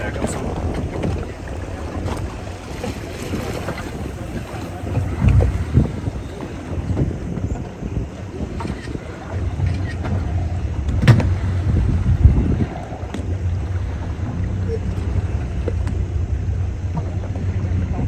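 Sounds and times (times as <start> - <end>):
outboard engine idling: 0.0 - 18.0
water moving along hull: 0.0 - 18.0
wind buffeting microphone: 0.0 - 18.0.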